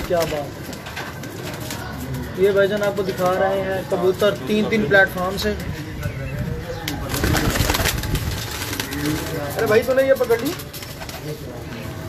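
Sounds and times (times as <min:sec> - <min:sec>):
pigeons cooing: 0:00.0 - 0:12.0
wings flapping: 0:06.8 - 0:11.5.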